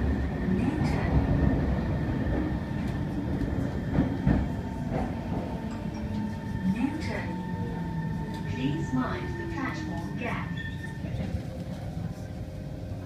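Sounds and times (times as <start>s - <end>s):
train wheels rumbling on rails: 0.0s - 13.0s.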